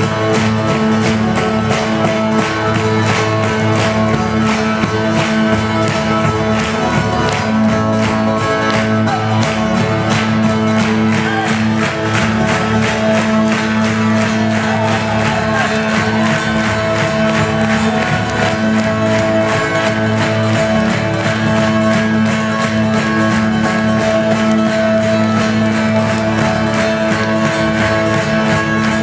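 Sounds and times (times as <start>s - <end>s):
acoustic guitar strumming: 0.0s - 29.0s.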